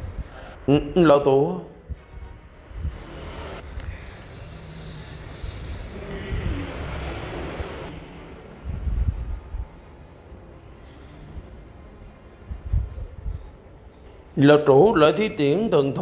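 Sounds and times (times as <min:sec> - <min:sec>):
background music: 0:00.0 - 0:16.0
low rumbling whoosh: 0:01.8 - 0:10.0.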